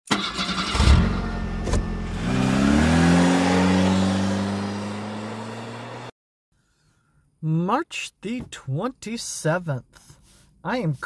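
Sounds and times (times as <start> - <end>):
car engine starting and revving: 0.1 - 6.1.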